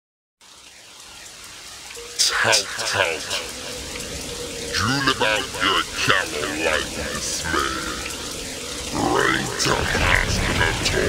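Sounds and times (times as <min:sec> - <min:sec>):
rain hissing: 0:00.4 - 0:11.0.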